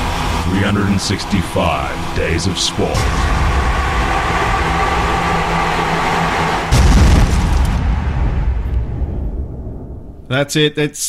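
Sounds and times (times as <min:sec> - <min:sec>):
steady rushing noise: 0:00.0 - 0:10.2
low hum: 0:00.0 - 0:10.3
loud boom: 0:02.8 - 0:10.3.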